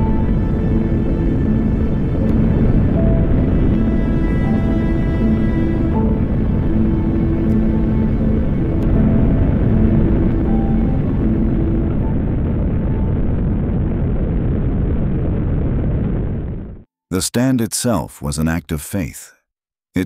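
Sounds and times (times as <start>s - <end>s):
background music held notes: 0.0s - 13.3s
rocket engines roaring: 0.0s - 16.8s.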